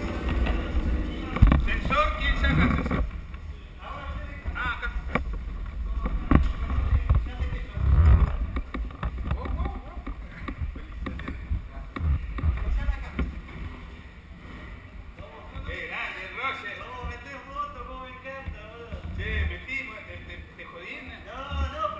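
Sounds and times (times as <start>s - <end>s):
camera rumble and knocks: 0.0s - 13.8s, 16.8s - 17.5s, 18.3s - 19.7s.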